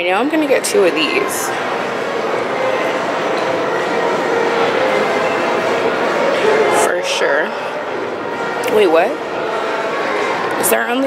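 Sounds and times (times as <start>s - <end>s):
loud background noise: 0.0s - 11.0s.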